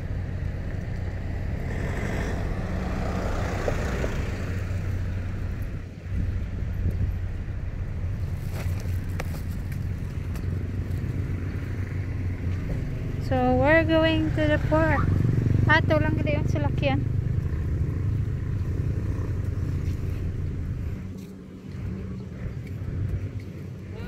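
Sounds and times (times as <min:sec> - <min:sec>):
vehicle engines rumbling: 0:00.0 - 0:24.0.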